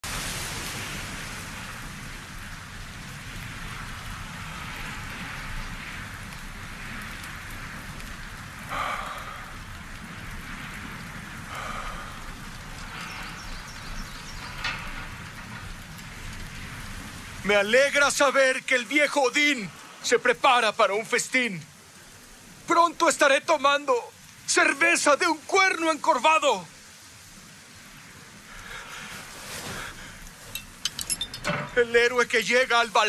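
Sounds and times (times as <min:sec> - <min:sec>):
steady rain hiss: 0:00.0 - 0:33.0.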